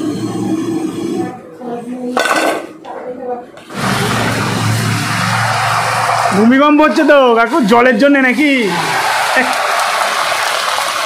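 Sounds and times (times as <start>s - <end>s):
oil sizzling deep-frying: 3.7s - 11.0s.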